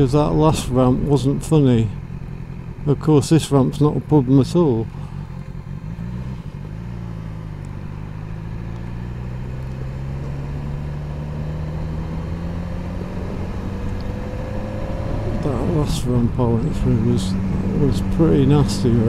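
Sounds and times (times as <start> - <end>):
motorcycle engine accelerating: 0.0 - 19.0.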